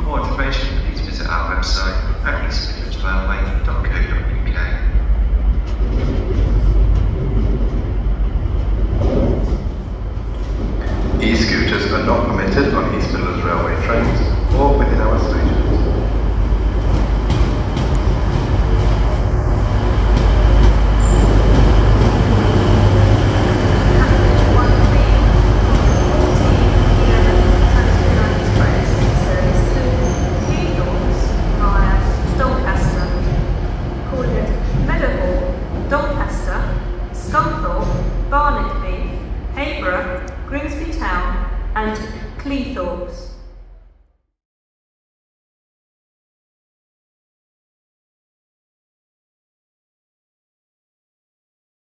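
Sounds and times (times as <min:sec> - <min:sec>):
diesel train engine rumble: 0:00.0 - 0:43.1
train wheels on rails: 0:04.1 - 0:41.2.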